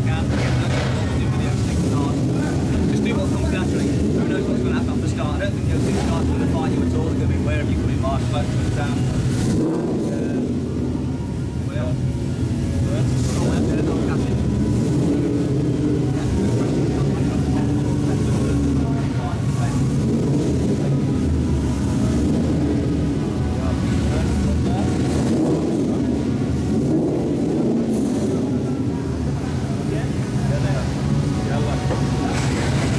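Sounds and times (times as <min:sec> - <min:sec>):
racing car engines idling: 0:00.0 - 0:32.9.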